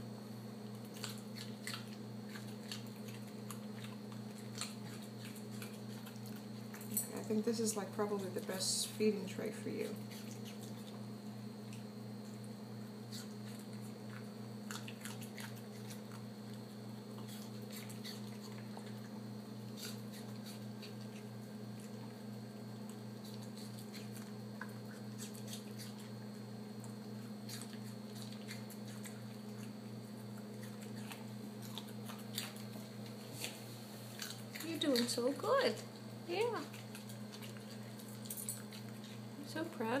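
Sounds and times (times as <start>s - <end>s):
steady low hum: 0.0s - 40.0s
dog chewing crunchy food: 0.5s - 40.0s.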